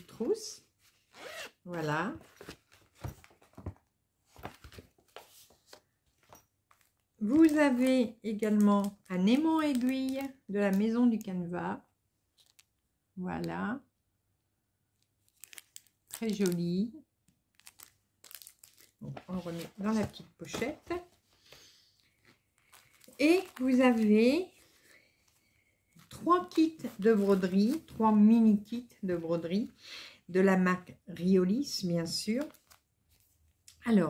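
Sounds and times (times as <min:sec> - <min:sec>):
plastic packet crinkling: 0:06.7 - 0:11.4, 0:12.4 - 0:12.8, 0:15.2 - 0:16.8, 0:17.5 - 0:19.9, 0:22.2 - 0:24.9, 0:32.4 - 0:32.8
pouch rustling: 0:22.1 - 0:24.9.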